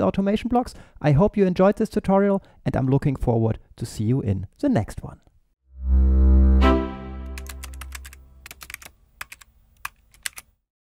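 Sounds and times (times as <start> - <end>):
deep sustained chord: 5.8 - 7.7
keyboard typing clicks: 7.2 - 10.5.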